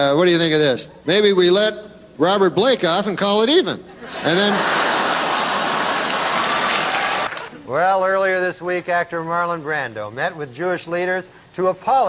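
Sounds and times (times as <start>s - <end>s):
audience laughing: 4.0s - 7.6s
audience applauding: 4.3s - 7.6s.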